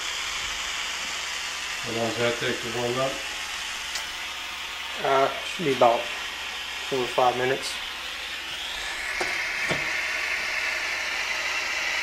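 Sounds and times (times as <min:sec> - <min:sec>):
torch burning with hiss: 0:00.0 - 0:12.0.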